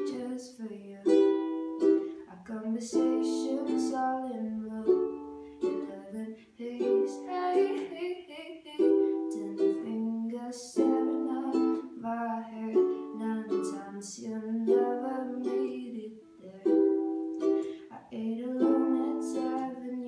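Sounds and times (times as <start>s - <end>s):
ukulele strummed chords: 0.0s - 20.0s
woman singing: 0.0s - 20.0s.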